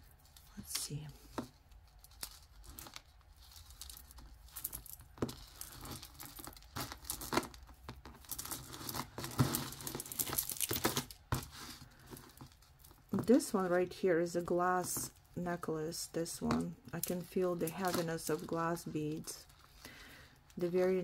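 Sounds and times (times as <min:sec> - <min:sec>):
necklaces clicking and clinking: 0:02.0 - 0:11.2.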